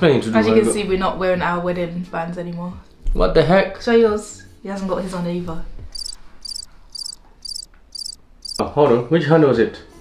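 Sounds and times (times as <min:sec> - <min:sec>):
cricket chirping: 0:06.0 - 0:08.6.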